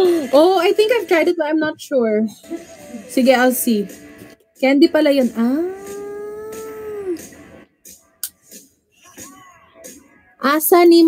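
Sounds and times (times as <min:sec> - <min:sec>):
woman singing aaah: 0:05.4 - 0:07.2.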